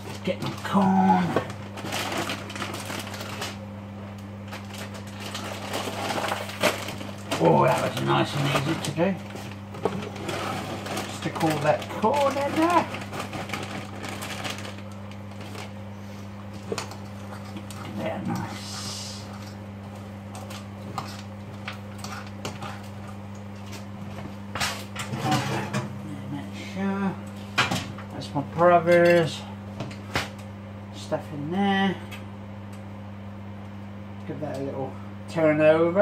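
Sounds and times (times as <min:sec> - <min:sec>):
kitchen appliance humming: 0:00.0 - 0:36.0.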